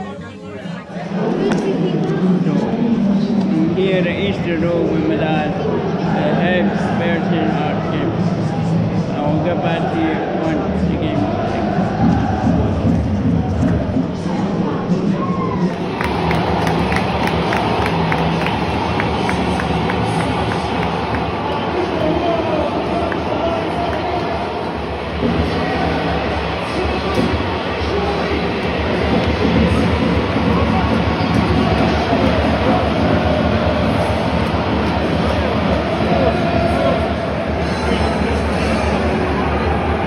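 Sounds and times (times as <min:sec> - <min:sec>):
stadium crowd chatter: 0:00.0 - 0:40.0.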